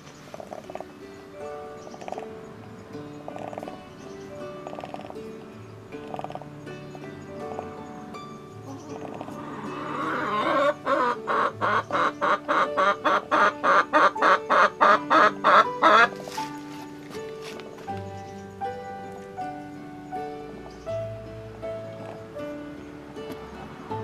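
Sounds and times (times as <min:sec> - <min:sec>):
background music: 0:00.0 - 0:24.0
hen clucking: 0:00.3 - 0:00.9, 0:08.7 - 0:16.4.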